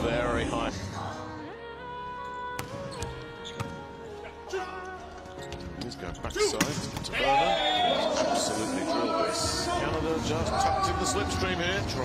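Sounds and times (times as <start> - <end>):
ball bouncing on court floor: 2.6 - 3.8.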